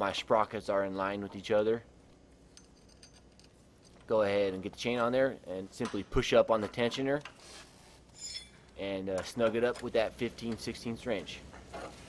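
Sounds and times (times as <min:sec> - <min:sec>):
faint metallic chain clinks: 0:02.5 - 0:04.0, 0:08.2 - 0:08.6.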